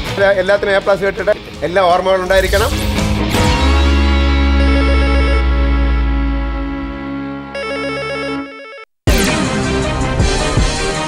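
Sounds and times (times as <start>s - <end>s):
fast warbling trill: 2.3s - 7.3s
sustained synth chords: 2.4s - 7.9s.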